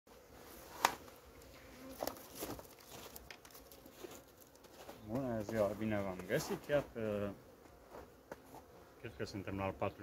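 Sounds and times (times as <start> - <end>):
bees buzzing: 0.1 - 10.0.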